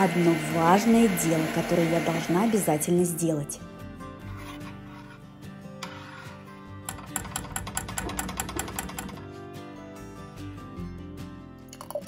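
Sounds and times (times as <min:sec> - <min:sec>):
music with fast clicking beat: 0:06.9 - 0:09.3.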